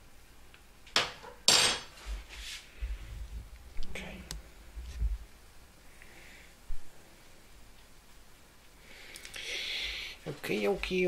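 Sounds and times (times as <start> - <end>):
faint rubbing: 2.0 - 3.5.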